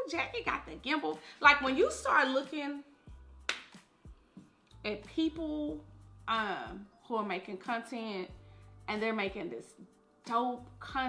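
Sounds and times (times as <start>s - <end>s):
finger snap: 3.4s - 3.9s.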